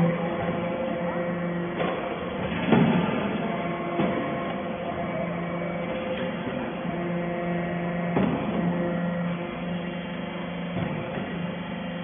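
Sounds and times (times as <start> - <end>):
hydraulic press humming: 0.0 - 12.0.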